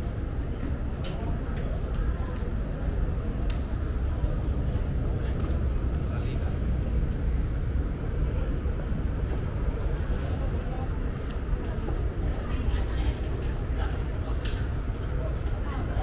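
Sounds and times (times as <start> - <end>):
faint chatter of people: 0.0 - 16.0.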